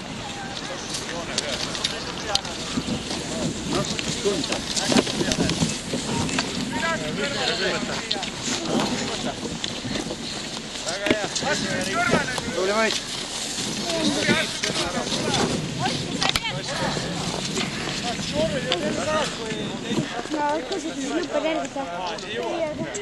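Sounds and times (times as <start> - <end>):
outdoor background noise: 0.0 - 23.0
people talking and calling out: 0.0 - 23.0.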